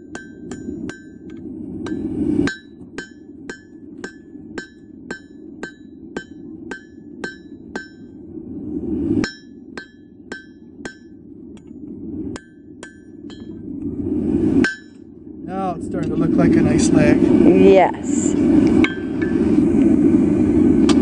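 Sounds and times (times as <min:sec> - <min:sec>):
hammer striking anvil: 0:00.1 - 0:01.3, 0:01.9 - 0:08.1, 0:09.2 - 0:11.1, 0:12.4 - 0:13.6
rushing noise: 0:13.2 - 0:21.0.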